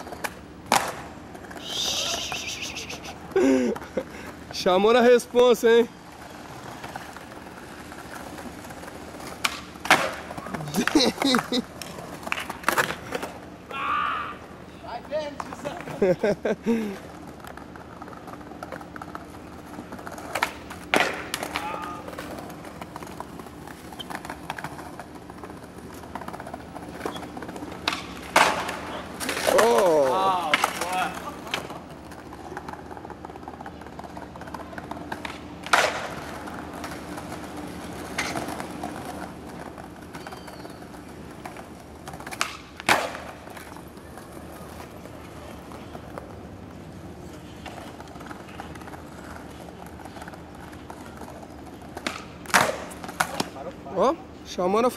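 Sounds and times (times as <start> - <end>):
skateboard clacking on stone: 0.0 - 2.5, 6.0 - 13.5, 15.0 - 16.0, 17.0 - 53.6
skateboard wheels rolling: 0.0 - 54.9
person calling out: 1.6 - 3.2.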